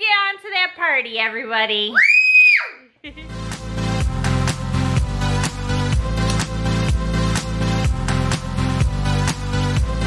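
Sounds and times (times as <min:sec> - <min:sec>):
child squealing: 0:02.0 - 0:02.9
electronic dance music: 0:03.4 - 0:10.0.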